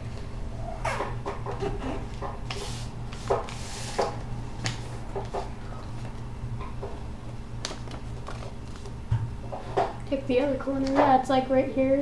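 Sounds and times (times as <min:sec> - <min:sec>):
steady low hum: 0:00.0 - 0:12.0
paper crinkling and folding: 0:07.6 - 0:09.0.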